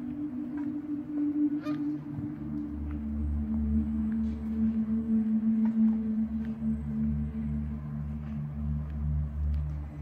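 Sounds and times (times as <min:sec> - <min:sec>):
low droning background music: 0:00.0 - 0:10.0
goose honk: 0:01.5 - 0:02.0.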